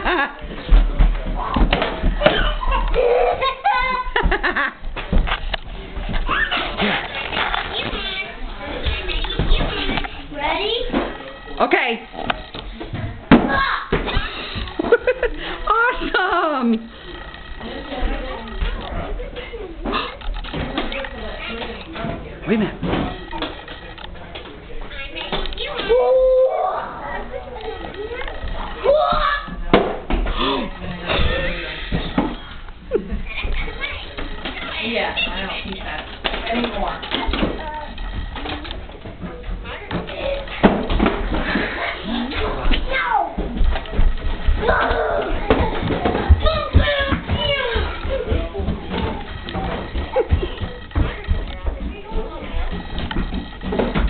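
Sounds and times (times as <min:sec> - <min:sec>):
murmur of voices: 0:00.0 - 0:54.0.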